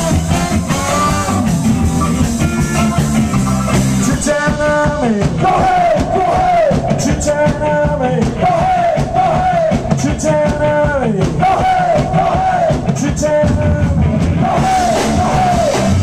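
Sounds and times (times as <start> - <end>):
horn riff: 0.0 - 8.2
drums bass and guitar: 0.0 - 16.0.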